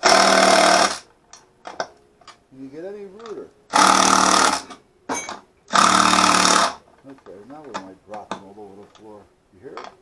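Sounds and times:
cordless drill boring wood: 0:00.0 - 0:01.0, 0:03.7 - 0:04.8, 0:05.7 - 0:06.8.

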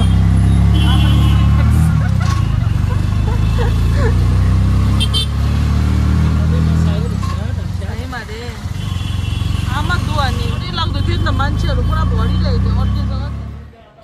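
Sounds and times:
auto-rickshaw engine drone: 0:00.0 - 0:14.0.

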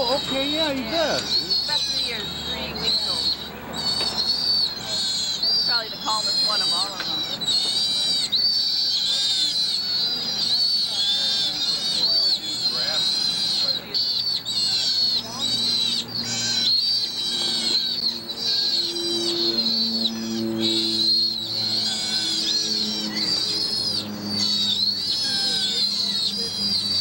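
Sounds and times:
sea otter pup squealing: 0:00.0 - 0:27.0
steady low hum: 0:00.0 - 0:27.0.

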